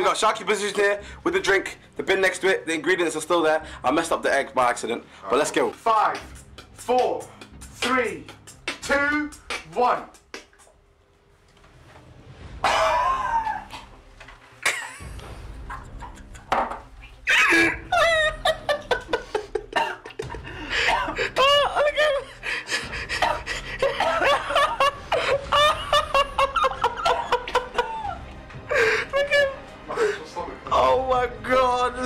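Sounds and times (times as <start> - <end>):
people laughing: 14.6 - 30.2.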